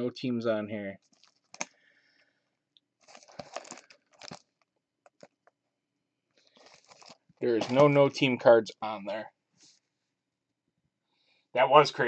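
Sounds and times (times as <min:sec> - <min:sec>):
plastic shrink wrap crinkling: 0:01.0 - 0:01.8, 0:03.0 - 0:05.5, 0:06.4 - 0:08.2.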